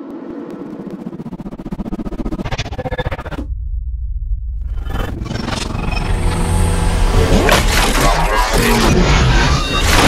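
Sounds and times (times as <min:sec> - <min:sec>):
fast stutter: 0:00.1 - 0:03.5
deep rumble: 0:00.1 - 0:07.5
glitchy logo sting: 0:04.6 - 0:10.0.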